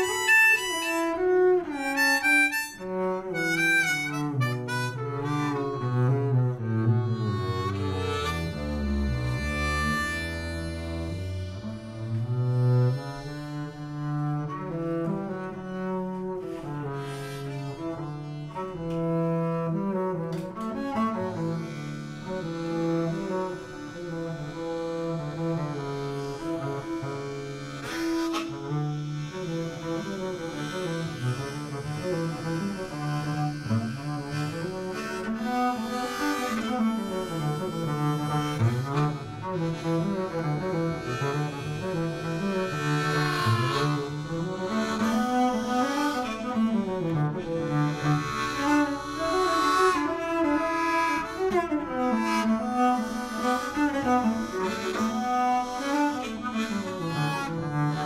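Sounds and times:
bowed double bass: 0.0 - 58.0
harmonica: 0.0 - 58.0.

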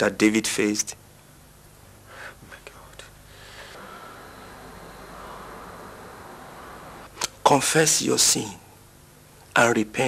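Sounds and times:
low electrical hum: 0.0 - 10.0
faint breathy hiss: 1.2 - 7.6.

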